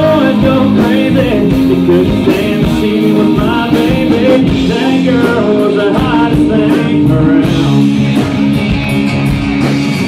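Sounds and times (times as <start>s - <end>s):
country-rock band playing: 0.0s - 10.0s
sliding guitar lead line: 0.0s - 10.0s.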